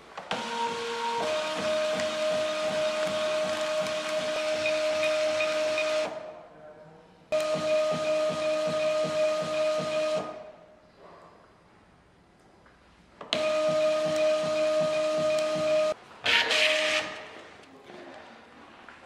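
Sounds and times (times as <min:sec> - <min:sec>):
label printer whining: 0:00.3 - 0:06.2, 0:07.4 - 0:10.5, 0:13.4 - 0:17.2.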